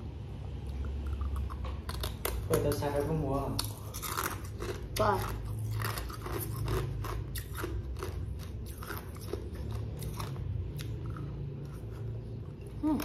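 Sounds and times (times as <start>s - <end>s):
chewing crunchy fruit: 0.5s - 13.0s.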